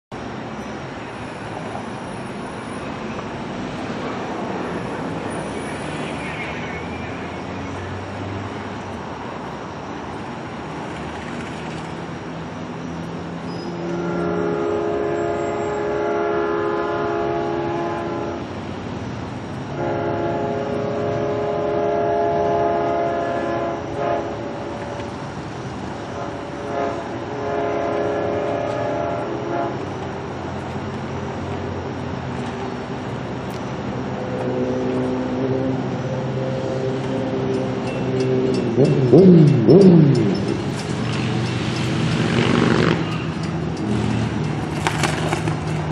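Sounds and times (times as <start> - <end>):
train rumble: 0.1 - 45.9
train air horn blasts: 13.6 - 18.5, 19.7 - 25.2, 26.1 - 29.9.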